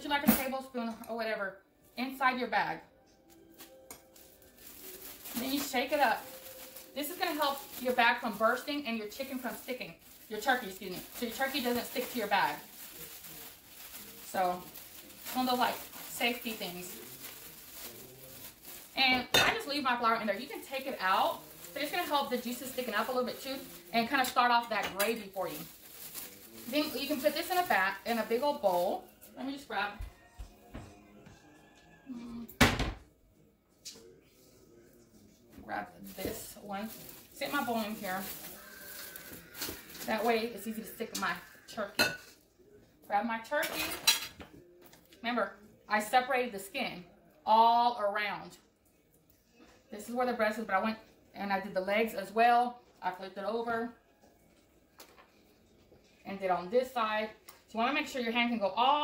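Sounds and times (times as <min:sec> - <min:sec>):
faint background music: 0:00.0 - 0:59.0
plastic bag crinkling: 0:03.4 - 0:29.8, 0:35.8 - 0:42.1.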